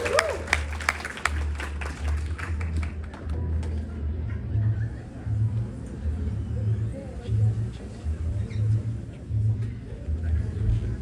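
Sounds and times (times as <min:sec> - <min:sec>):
audience applause: 0:00.0 - 0:03.3.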